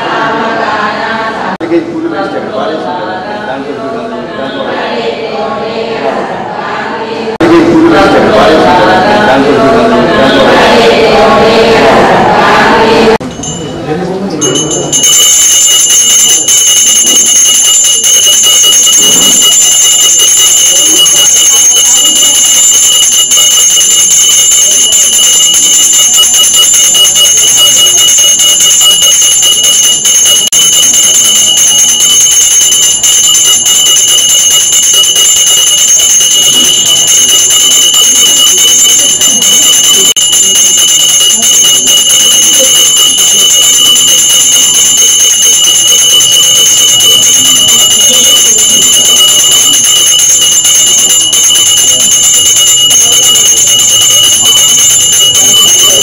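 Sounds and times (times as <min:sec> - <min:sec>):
temple bells ringing: 0:13.2 - 0:56.0.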